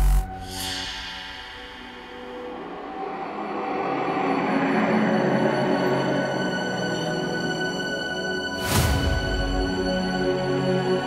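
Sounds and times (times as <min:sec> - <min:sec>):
tense drone score: 0:00.0 - 0:11.0.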